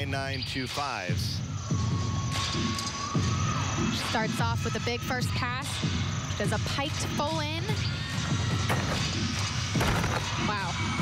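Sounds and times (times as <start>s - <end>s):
floor exercise music: 0.9s - 11.0s.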